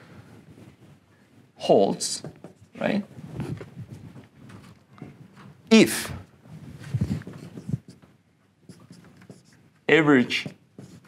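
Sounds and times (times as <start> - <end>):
marker writing on whiteboard: 1.9 - 3.0, 7.0 - 11.0.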